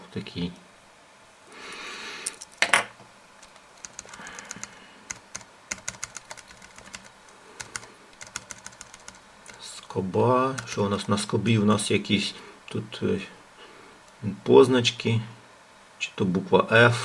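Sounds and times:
computer keys clicking: 3.4s - 9.6s, 10.6s - 11.2s.

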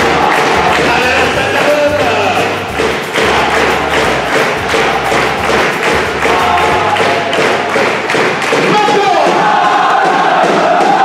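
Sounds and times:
people shouting: 0.0s - 11.0s
people stamping and clapping: 0.0s - 11.0s.

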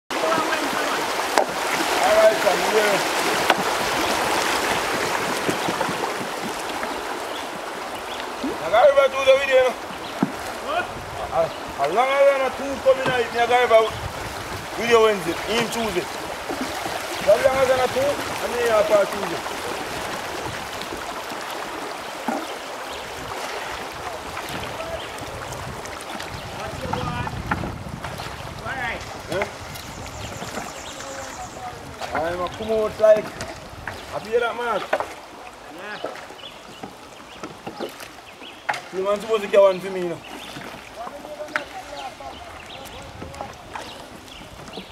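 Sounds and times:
river water rushing over stones: 0.1s - 37.3s.

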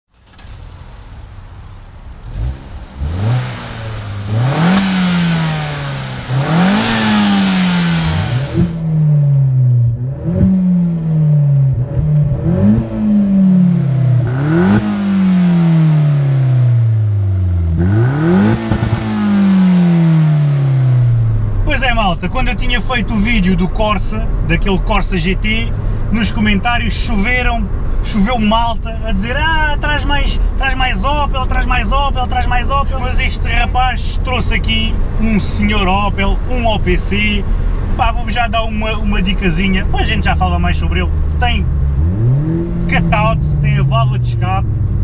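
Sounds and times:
car engine revving: 0.1s - 45.0s.

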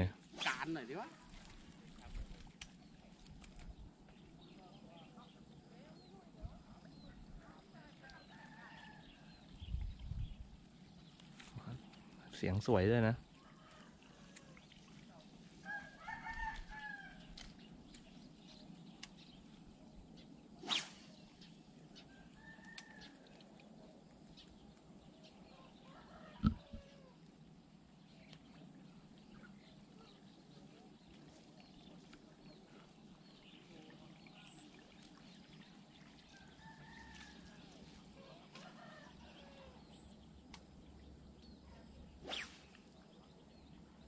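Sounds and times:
faint roosters crowing: 8.0s - 9.4s, 13.3s - 14.6s, 15.6s - 17.5s, 22.0s - 23.6s, 25.5s - 27.2s, 36.3s - 40.1s.

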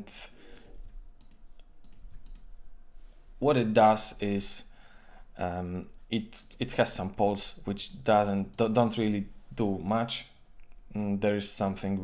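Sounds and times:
keyboard and mouse clicks: 0.5s - 2.5s.

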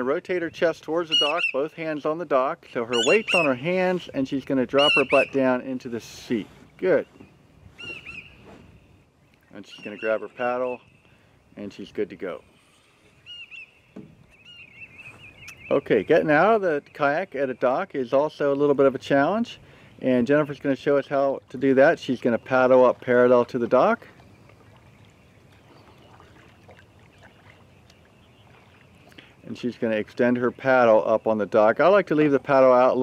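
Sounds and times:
bird chirping and warbling: 1.0s - 1.7s, 2.8s - 4.0s, 4.6s - 5.8s, 6.6s - 11.2s, 12.3s - 17.8s, 24.2s - 29.6s
kayak paddle splashing water: 21.4s - 29.4s.

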